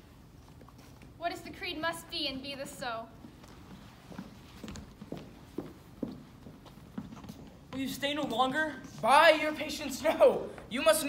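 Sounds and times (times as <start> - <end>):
footsteps on stage floor: 3.1 - 9.4.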